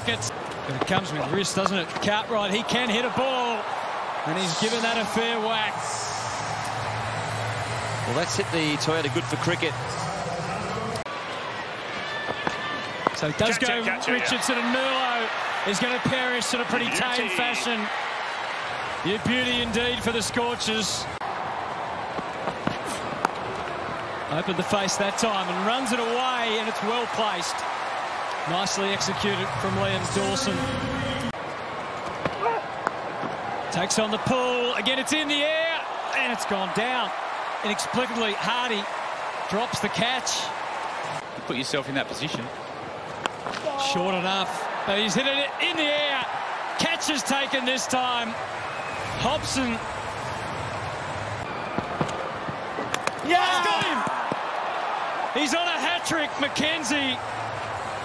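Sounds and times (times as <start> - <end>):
stadium crowd murmuring: 0.0 - 58.0
bat hitting ball crack: 51.7 - 54.6.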